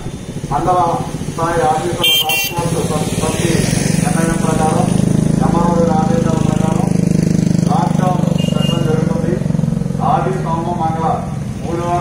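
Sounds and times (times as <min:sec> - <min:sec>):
vehicle engine idling: 0:00.0 - 0:12.0
man announcing over loudspeaker: 0:00.4 - 0:07.0, 0:07.6 - 0:12.0.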